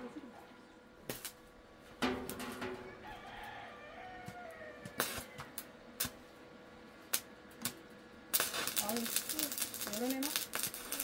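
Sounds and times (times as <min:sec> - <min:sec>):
rooster crowing: 0:02.7 - 0:05.7.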